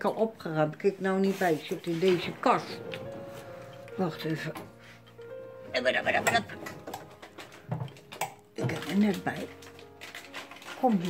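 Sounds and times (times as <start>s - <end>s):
woman speaking: 0.0s - 2.9s, 3.9s - 4.7s, 5.7s - 6.7s, 8.6s - 9.6s, 10.7s - 11.0s
quiet background music: 0.0s - 11.0s.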